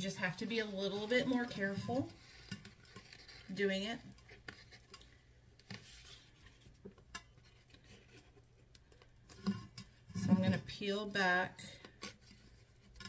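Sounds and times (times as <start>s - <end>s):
person speaking: 0.0s - 2.2s
adhesive tape rustling: 0.5s - 9.6s.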